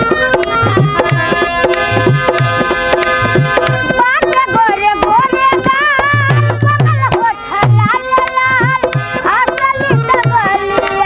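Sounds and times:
dholak drum rhythm: 0:00.0 - 0:11.0
harmonium melody: 0:00.0 - 0:11.0.

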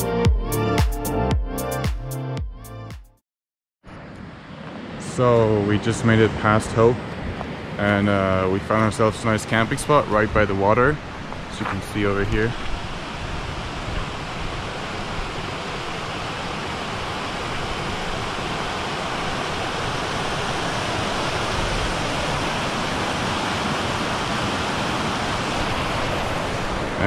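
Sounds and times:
stream rushing over rocks: 0:04.4 - 0:27.0.

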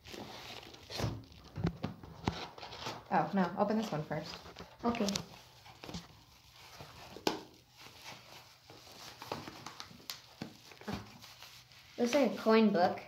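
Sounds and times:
paper envelope rustling and crinkling: 0:00.0 - 0:12.6.

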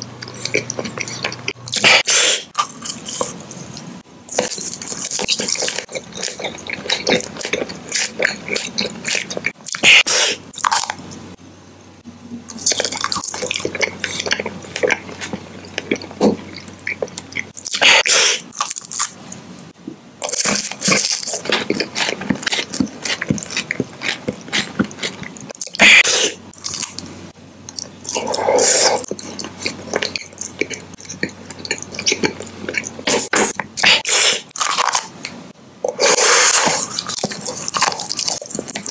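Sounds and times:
chewing and wet mouth sounds: 0:00.0 - 0:11.2, 0:12.5 - 0:27.1, 0:27.7 - 0:38.9.

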